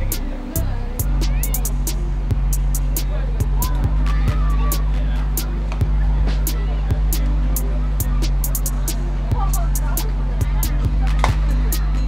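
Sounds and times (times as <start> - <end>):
deep bass music: 0.0 - 12.0.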